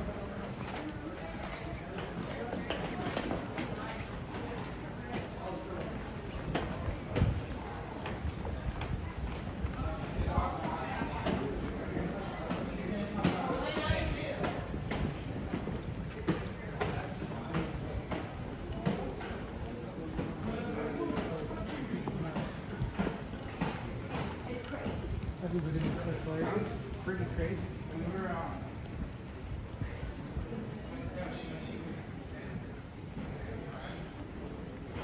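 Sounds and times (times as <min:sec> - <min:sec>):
footsteps of group walking: 0:00.0 - 0:35.0
indistinct chatter: 0:00.0 - 0:35.0.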